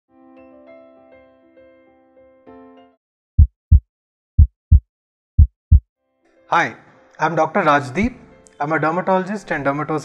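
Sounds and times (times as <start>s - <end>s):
heartbeat double thump: 3.4s - 3.8s, 4.4s - 5.8s.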